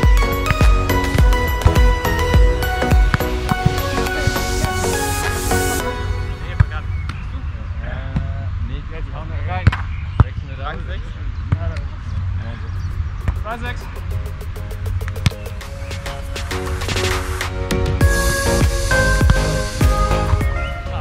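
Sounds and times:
people calling and talking: 0.0 - 21.0.

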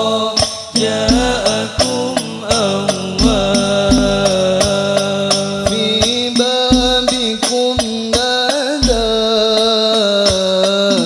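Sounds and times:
frame drums: 0.0 - 11.0
men singing devotional melody: 0.0 - 11.0.

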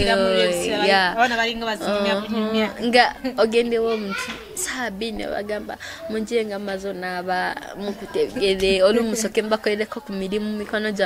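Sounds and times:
girl and woman talking: 0.0 - 11.0.

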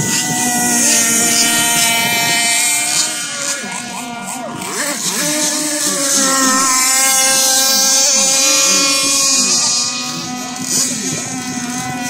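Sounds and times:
high-pitched engine whine: 0.0 - 12.0
lower engine pitch wavering: 0.0 - 12.0.

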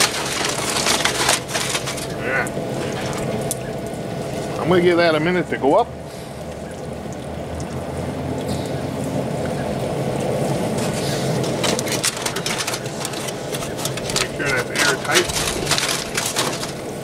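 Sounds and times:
aluminium foil crinkling: 0.0 - 4.6, 10.7 - 17.0
steady rushing noise: 7.3 - 17.0.

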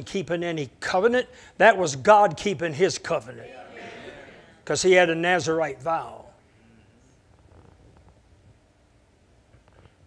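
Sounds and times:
faint low room hum: 0.0 - 10.0.

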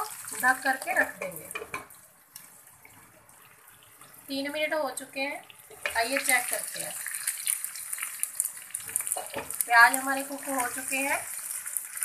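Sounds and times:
small pops of frying oil: 0.0 - 3.0, 5.5 - 12.0
onions sizzling in a pan: 0.0 - 12.0.

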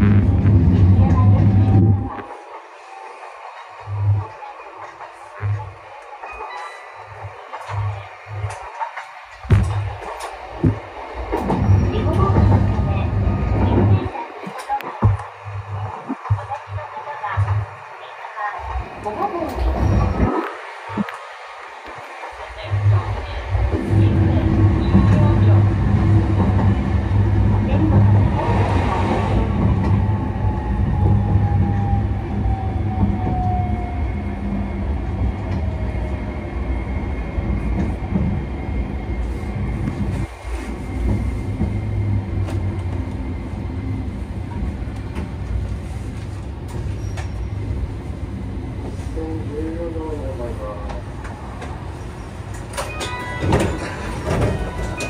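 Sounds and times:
tram motor hum: 0.0 - 6.3, 6.9 - 55.0
tram wheels on rails: 0.0 - 55.0.

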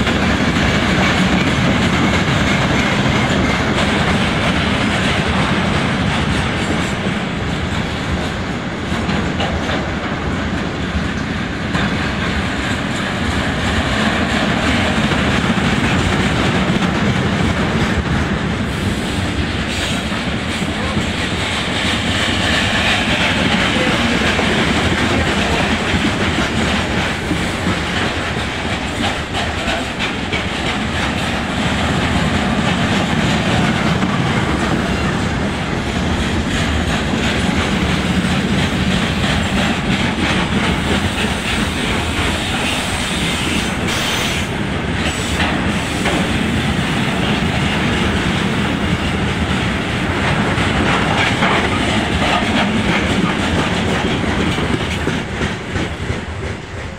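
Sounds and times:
train wheels on rails: 0.0 - 56.9.

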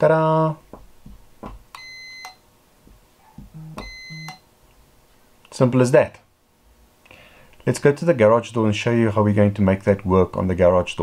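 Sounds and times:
continuity tester beeping: 1.8 - 2.4, 3.4 - 4.5.

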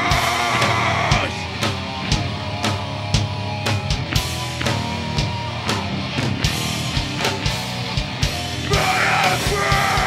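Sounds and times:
shouted vocals: 0.0 - 1.4, 8.6 - 10.0
punk band playing live: 0.0 - 10.0.

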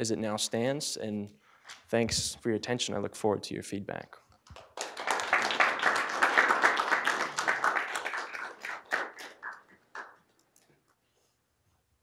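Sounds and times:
audience applauding: 4.5 - 10.2.

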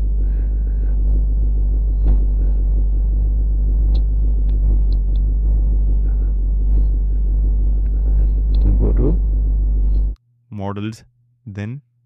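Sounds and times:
loud low hum: 0.0 - 11.5.

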